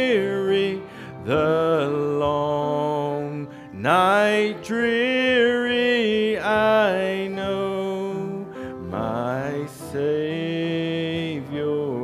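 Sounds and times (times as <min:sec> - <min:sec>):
acoustic guitar: 0:00.0 - 0:12.0
man singing a hymn: 0:00.0 - 0:12.0.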